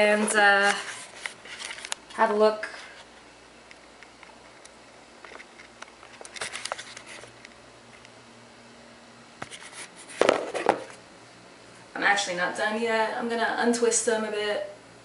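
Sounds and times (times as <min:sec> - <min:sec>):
camera handling rustles and clicks: 0:05.2 - 0:07.2.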